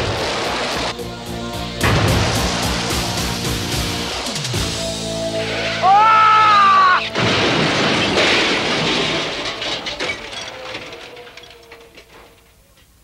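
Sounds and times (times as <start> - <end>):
crash of crunching metal: 1.8 - 13.0
clattering debris: 5.3 - 13.0.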